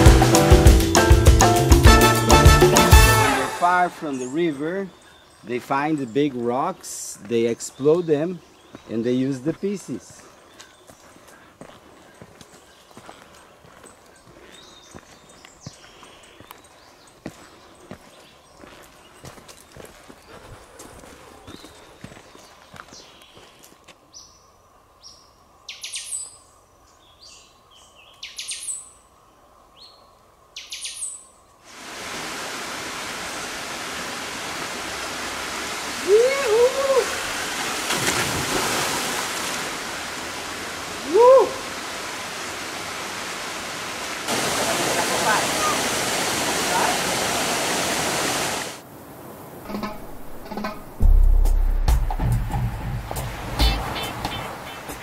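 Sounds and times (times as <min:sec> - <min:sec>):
water rushing into a pool: 0:31.7 - 0:48.8
short wavering calls: 0:53.6 - 0:55.0.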